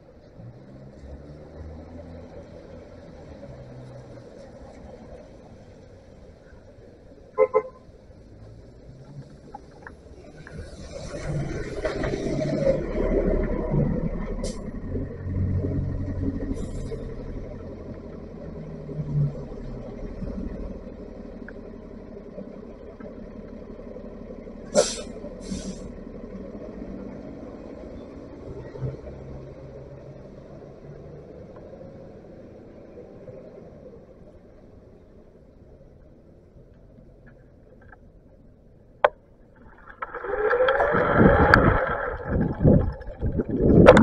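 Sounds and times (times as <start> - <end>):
bus engine rumble: 0.0 - 44.0
air brake hisses: 24.7 - 25.9.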